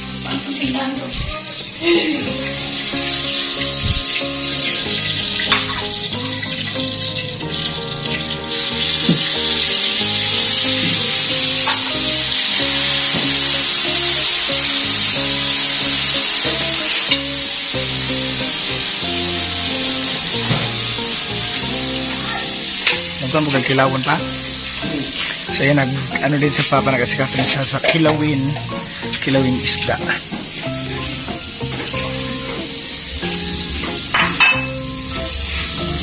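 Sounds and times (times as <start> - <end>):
background music: 0.0 - 36.0
fish sizzling in hot oil: 0.0 - 36.0.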